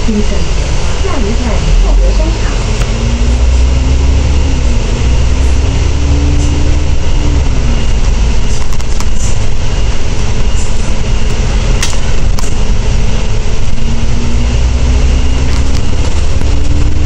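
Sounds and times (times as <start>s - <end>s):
diesel bus engine whining: 0.0s - 17.0s.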